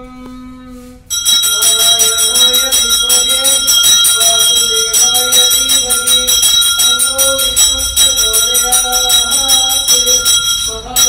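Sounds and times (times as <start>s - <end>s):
bell ringing rapidly: 1.1s - 11.0s
wavering music melody: 1.1s - 11.0s.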